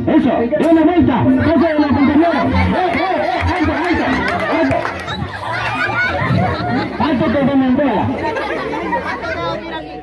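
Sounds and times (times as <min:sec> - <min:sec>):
adults and children chattering: 0:00.4 - 0:10.0.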